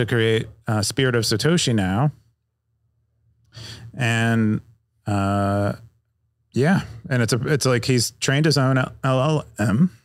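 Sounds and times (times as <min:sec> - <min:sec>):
man talking: 0:00.0 - 0:02.2, 0:03.6 - 0:05.9, 0:06.5 - 0:10.0.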